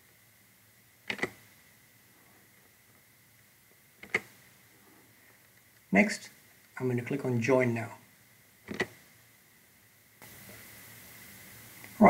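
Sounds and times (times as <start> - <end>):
faint steady hiss: 0.0 - 12.0
mouse click: 1.1 - 1.4.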